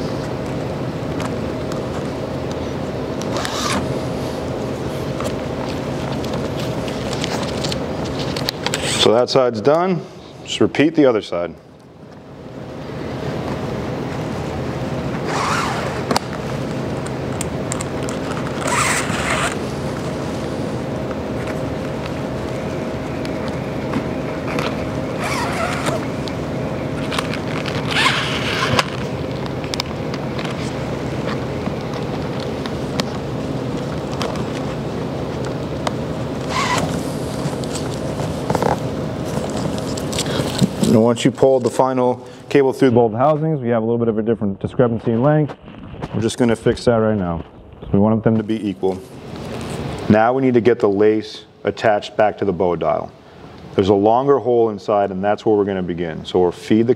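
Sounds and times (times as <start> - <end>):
cable zipping through lace guides: 3.3 - 3.9, 15.2 - 16.2, 18.3 - 19.6, 25.2 - 26.1, 27.0 - 29.0, 36.4 - 37.0.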